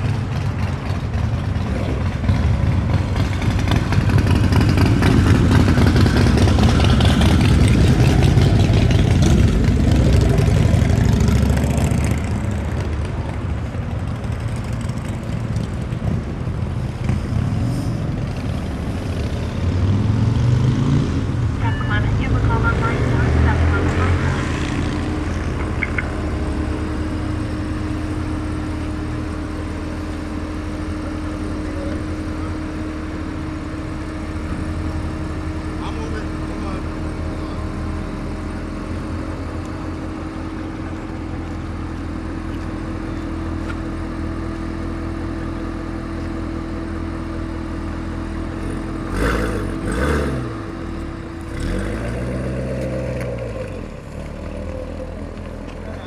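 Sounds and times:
car engine running: 0.0 - 20.0, 21.2 - 56.0.

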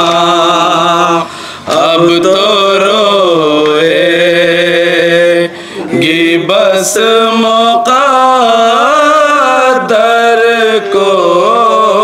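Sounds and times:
men chanting: 0.0 - 12.0.

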